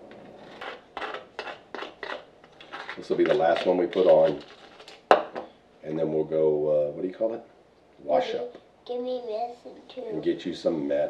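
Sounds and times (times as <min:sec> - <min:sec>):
sandy mortar scraping plastic bowl: 0:00.3 - 0:05.0.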